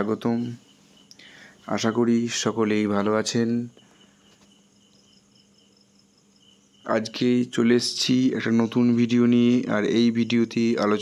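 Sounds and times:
speech: 0.0 - 0.6, 1.7 - 3.7, 6.9 - 11.0.

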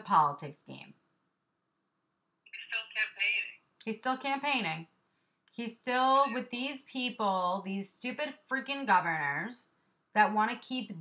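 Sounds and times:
woman speaking: 0.0 - 1.0, 3.8 - 4.9, 5.5 - 11.0
voice over phone line: 2.5 - 3.6.

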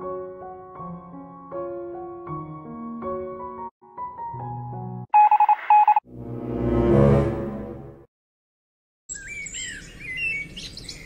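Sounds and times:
electronic phone beeping: 5.2 - 6.0.

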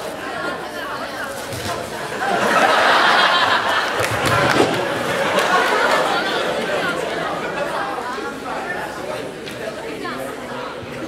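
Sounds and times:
indistinct chatter of voices: 0.0 - 11.0.

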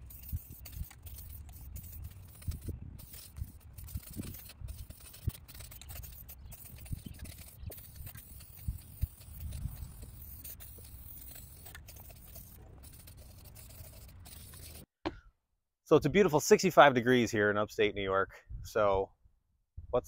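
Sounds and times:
spray paint can hissing: 0.0 - 14.9.

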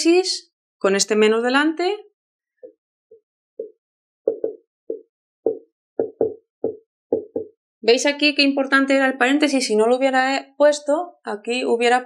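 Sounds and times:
marker writing on whiteboard: 2.6 - 7.5.

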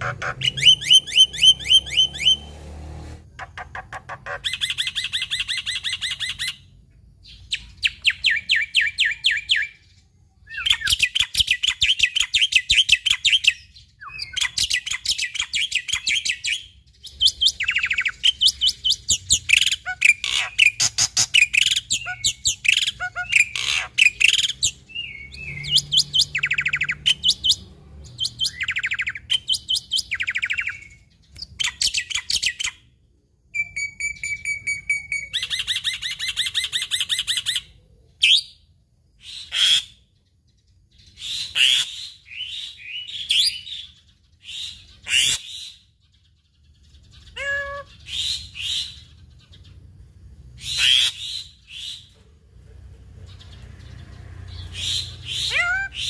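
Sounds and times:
bird rattling song: 0.0 - 2.6, 10.6 - 32.8.

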